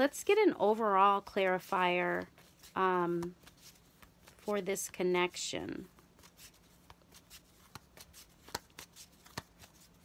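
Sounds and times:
cards being shuffled: 1.5 - 4.9, 5.8 - 10.0.

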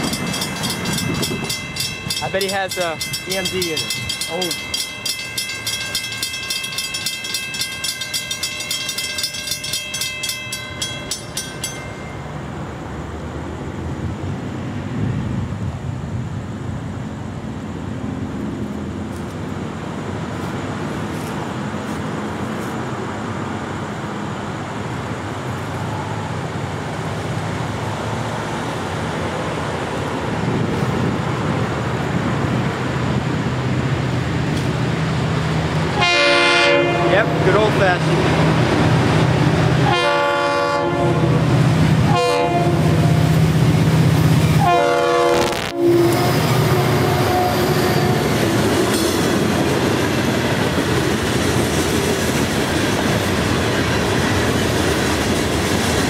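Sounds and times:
crossing bells ringing: 0.0 - 12.5
freight train rumble: 0.0 - 56.0.

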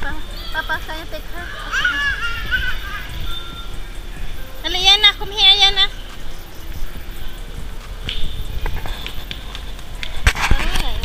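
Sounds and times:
children calling and squealing: 0.0 - 11.0
low rumble: 0.0 - 11.0.

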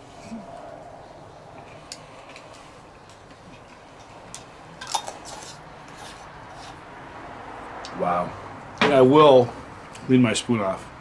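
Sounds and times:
spoon scraping container: 4.8 - 6.8.

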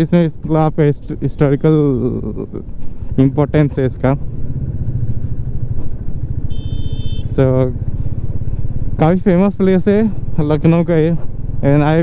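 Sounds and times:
motorcycle engine running: 0.2 - 12.0.

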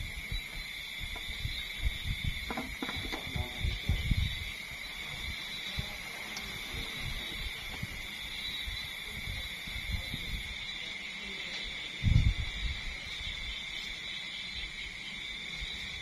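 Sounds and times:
night insects trilling: 0.0 - 16.0.

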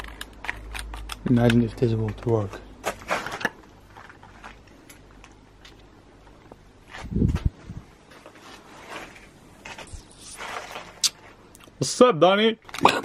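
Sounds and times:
clicks and rustles of objects handled: 0.0 - 11.8.

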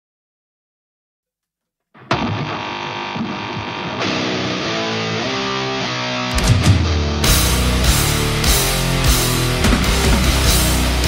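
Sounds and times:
distorted electric guitars and bass: 2.0 - 11.0.

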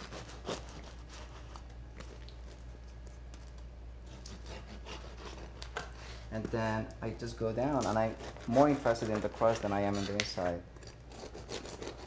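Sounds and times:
bread knife sawing crust: 0.0 - 1.4, 4.1 - 5.6, 8.0 - 10.4, 11.1 - 12.0.

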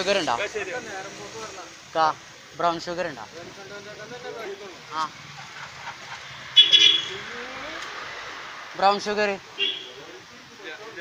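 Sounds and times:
street noise: 0.0 - 11.0
scooter horn blast: 6.6 - 7.2, 9.6 - 10.0.

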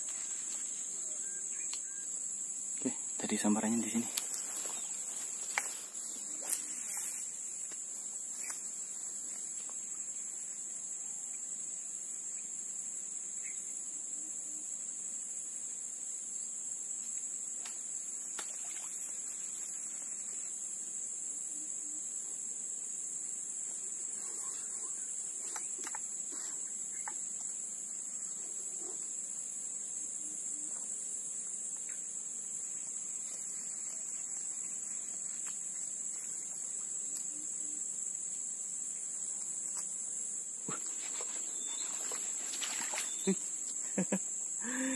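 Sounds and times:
insects buzzing drone: 0.0 - 44.9.

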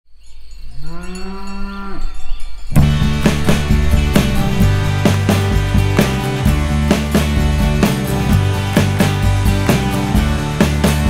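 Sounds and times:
steady low hum: 2.8 - 7.8
low drawn-out rising call: 2.8 - 8.8.

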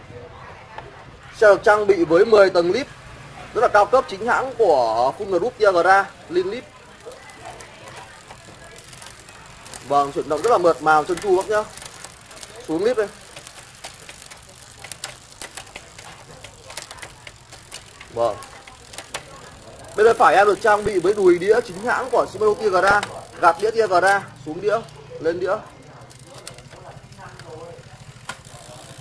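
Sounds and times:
bicycle chain running over cassette: 1.3 - 29.0
derailleur shifting clicks: 3.6 - 29.0.

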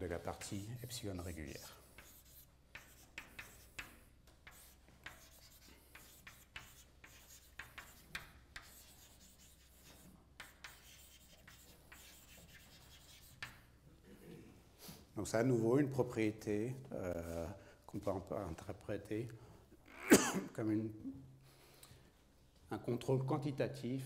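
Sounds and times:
chalk tapping and scratching on blackboard: 0.2 - 13.7.

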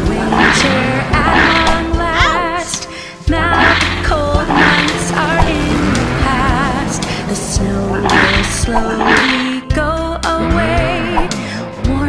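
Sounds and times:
instrumental backing track with bass: 0.0 - 12.0
person singing: 0.0 - 12.0.

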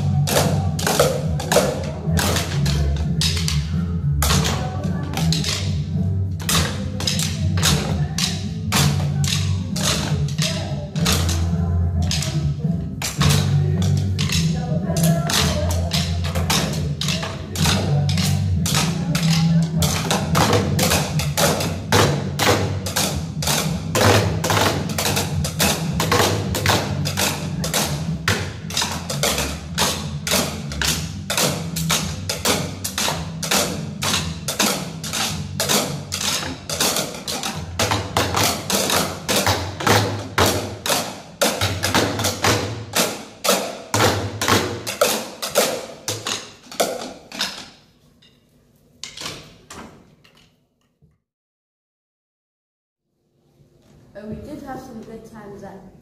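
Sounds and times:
sticks drumming on plastic chairs: 0.0 - 47.8.

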